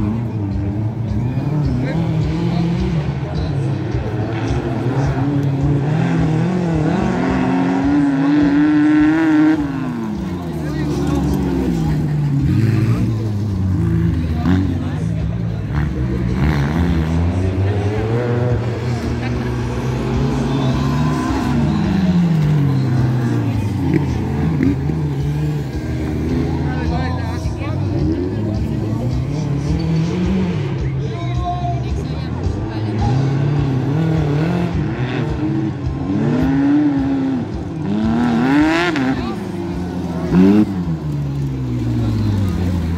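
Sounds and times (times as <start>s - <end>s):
racing buggy engines revving: 0.0s - 42.9s.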